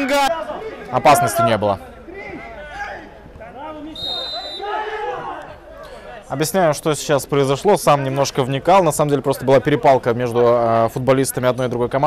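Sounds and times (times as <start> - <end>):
players shouting and arguing: 0.0 - 7.1
referee's whistle blast: 3.9 - 4.8.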